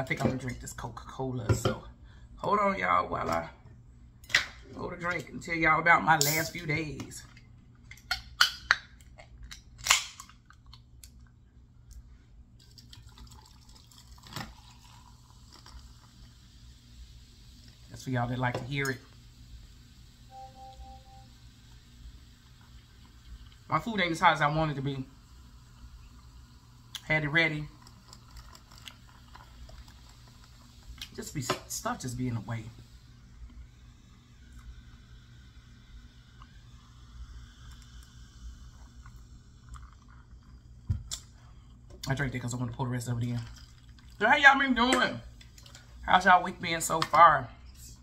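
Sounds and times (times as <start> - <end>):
low steady hum: 0.0 - 48.0
soft steady fizz hiss: 0.0 - 48.0
soda can popping open: 7.9 - 10.4.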